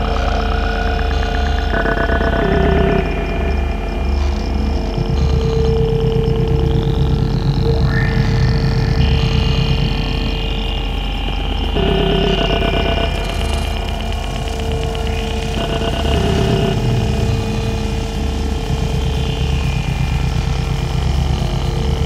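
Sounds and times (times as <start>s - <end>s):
harsh electronic noise music: 0.0s - 22.0s
low pulsing drone: 0.0s - 22.0s
sustained electronic tones: 0.0s - 22.0s.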